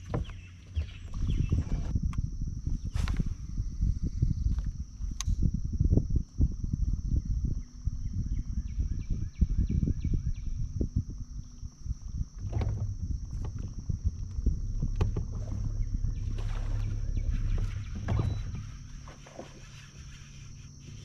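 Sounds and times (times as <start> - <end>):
water slapping boat hull: 0.0 - 1.9, 12.4 - 21.0
low steady hum: 0.0 - 21.0
wind buffeting microphone: 0.0 - 21.0
high insect drone: 1.4 - 21.0.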